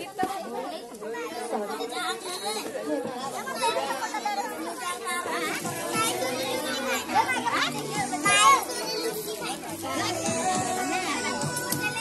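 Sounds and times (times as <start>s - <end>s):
children talking and calling out: 0.0s - 12.0s
high-pitched child shout: 8.2s - 9.0s.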